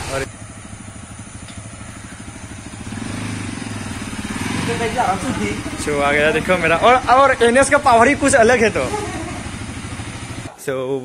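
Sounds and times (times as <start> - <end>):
motorcycle engine idling: 0.0 - 10.6.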